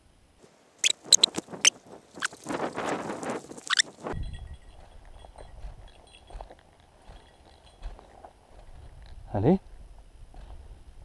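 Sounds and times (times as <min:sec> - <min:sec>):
faint breeze: 0:00.0 - 0:11.0
rustling through dry grass: 0:00.4 - 0:04.2.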